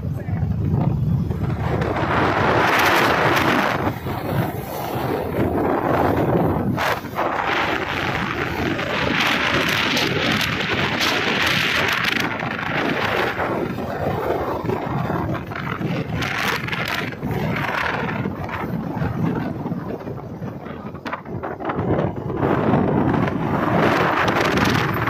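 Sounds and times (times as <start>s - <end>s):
wind rushing over microphone: 0.0s - 25.0s.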